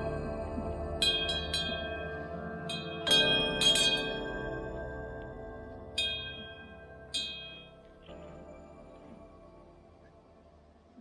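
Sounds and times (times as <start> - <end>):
cowbells clanging: 1.0 - 5.2, 5.9 - 8.1.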